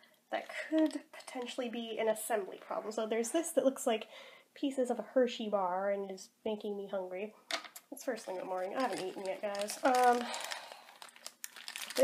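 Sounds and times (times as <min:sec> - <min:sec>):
packaging crinkling: 0:08.1 - 0:12.0.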